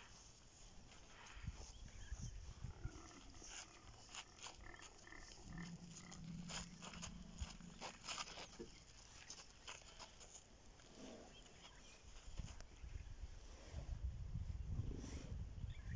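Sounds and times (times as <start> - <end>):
soft scuffs and clicks on dirt: 0.0 - 13.0.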